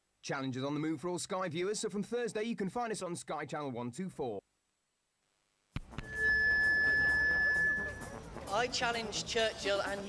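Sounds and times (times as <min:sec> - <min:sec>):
microphone feedback whine: 0:05.8 - 0:08.2.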